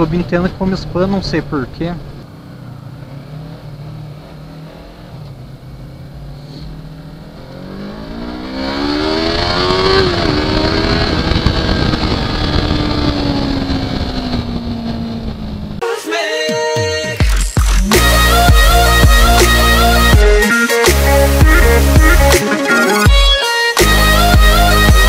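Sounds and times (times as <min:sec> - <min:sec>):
motorcycle engine accelerating: 0:00.0 - 0:15.8, 0:17.6 - 0:22.4
wind noise on microphone: 0:08.6 - 0:15.8.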